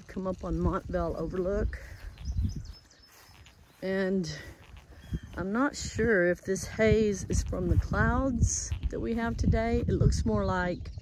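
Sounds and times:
person talking: 0:00.0 - 0:01.8, 0:03.8 - 0:04.6, 0:05.4 - 0:10.8
low rumble on microphone: 0:00.0 - 0:11.0.

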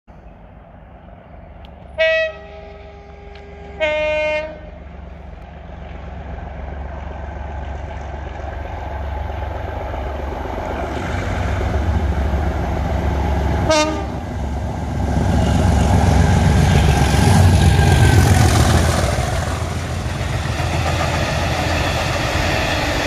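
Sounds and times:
diesel locomotive engine working hard: 0:00.2 - 0:23.0
two-tone locomotive horn: 0:02.0 - 0:04.8, 0:13.6 - 0:14.2.

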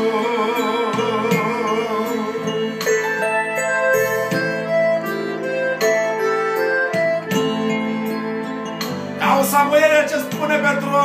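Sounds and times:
piano accordion playing: 0:00.0 - 0:11.0.

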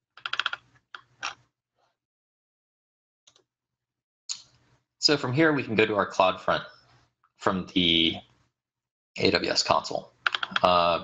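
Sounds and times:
computer mouse clicks: 0:00.2 - 0:01.4, 0:10.3 - 0:10.7.

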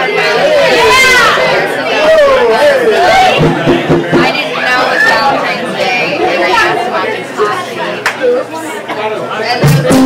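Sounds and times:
people talking and chattering: 0:00.0 - 0:10.0.

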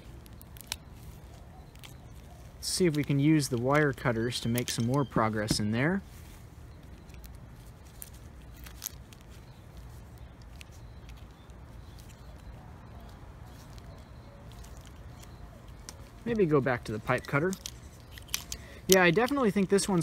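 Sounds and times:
wire cutters snipping metal: 0:16.8 - 0:20.0.

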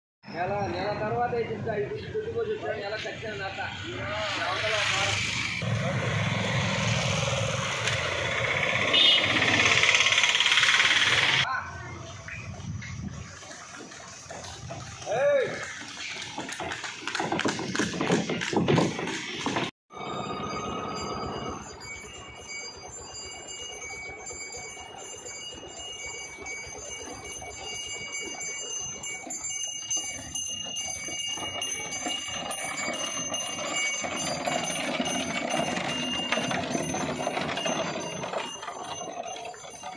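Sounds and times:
street noise: 0:00.2 - 0:39.9
small bells ringing: 0:19.9 - 0:39.9.

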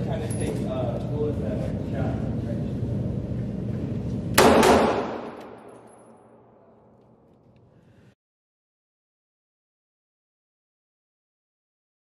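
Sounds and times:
low faint steady hum: 0:00.0 - 0:08.2
pistol shot reverberation: 0:04.4 - 0:06.5.

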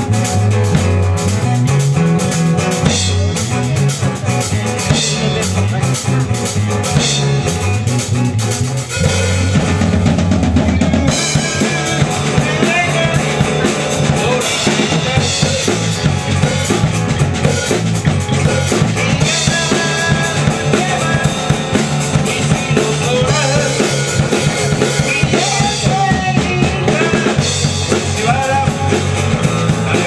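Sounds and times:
drums: 0:00.0 - 0:30.0
live rock band playing: 0:00.0 - 0:30.0.

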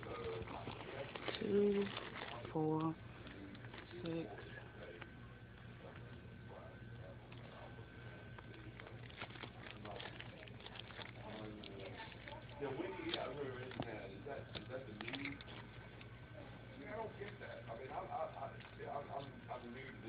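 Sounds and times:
faint distant voices: 0:00.0 - 0:20.0
faint indistinct talking: 0:00.0 - 0:20.0
low electrical hum: 0:00.0 - 0:20.0.

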